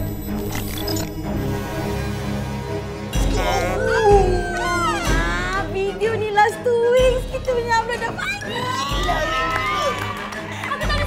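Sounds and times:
trailer soundtrack music: 0.0 - 11.0.

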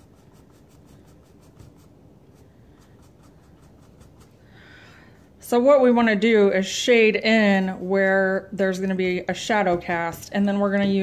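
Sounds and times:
paintbrush rubbing strokes: 0.0 - 5.6.

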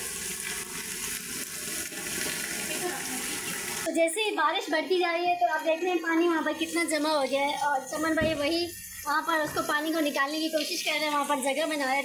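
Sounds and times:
water pouring off roofs: 0.0 - 3.9.

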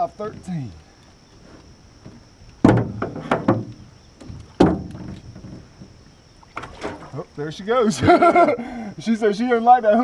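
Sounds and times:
hollow knocks and thumps: 1.4 - 7.1.

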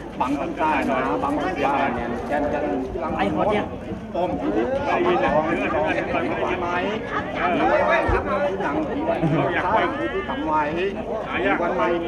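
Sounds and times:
people talking at once: 0.0 - 12.0.

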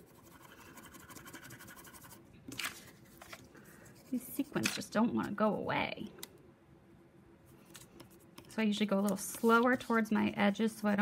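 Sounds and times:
crayon scribbling on paper: 0.0 - 2.2.

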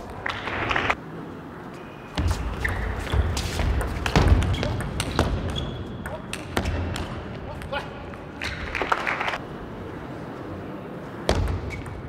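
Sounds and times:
crowd rumble in large hall: 0.0 - 12.0.

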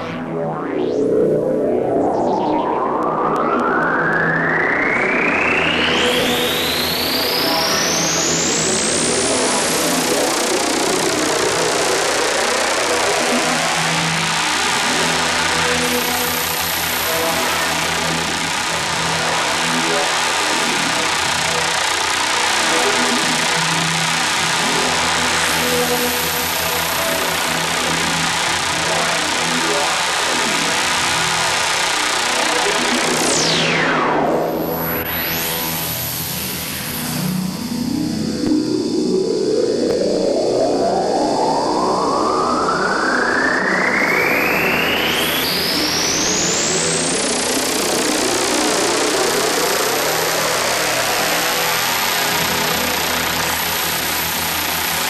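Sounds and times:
low drone gliding upward: 0.0 - 55.0
synthesizer noise sweep: 0.0 - 55.0.

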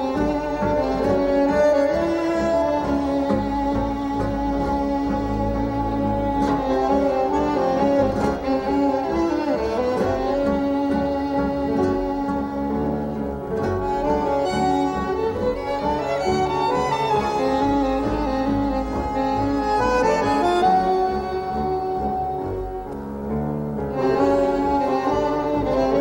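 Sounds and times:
tango ensemble playing: 0.0 - 26.0
violin bowed notes: 0.0 - 26.0.

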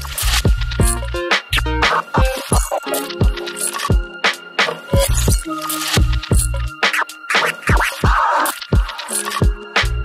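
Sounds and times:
hip hop instrumental beat: 0.0 - 10.0
turntable scratches: 0.0 - 10.0.

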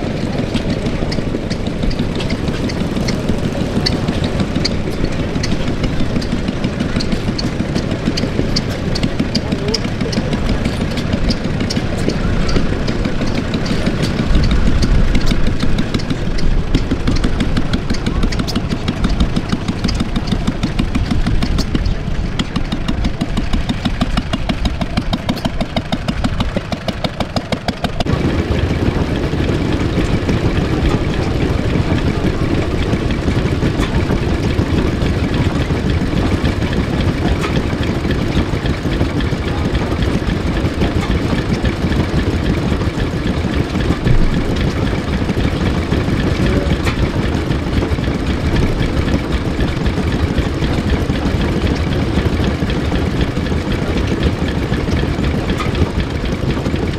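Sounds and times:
stationary engine running: 0.0 - 56.9.

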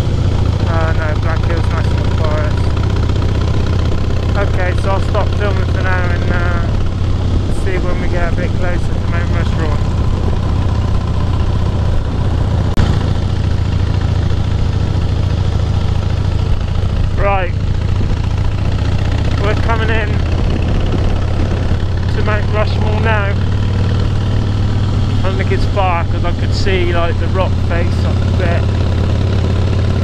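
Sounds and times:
motorcycle engine cruising: 0.0 - 30.0
wind noise on microphone: 17.8 - 18.8, 20.0 - 22.0.

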